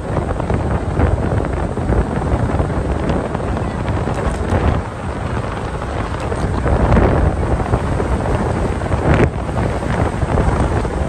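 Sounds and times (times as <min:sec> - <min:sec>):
car road noise rumble: 0:00.0 - 0:11.0
wind buffeting microphone: 0:00.0 - 0:11.0.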